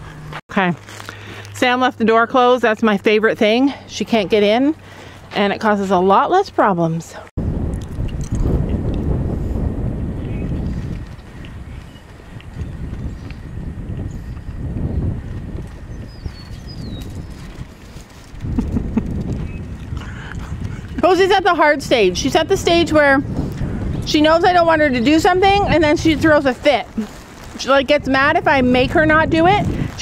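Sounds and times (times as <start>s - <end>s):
wind buffeting microphone: 2.2s - 30.0s.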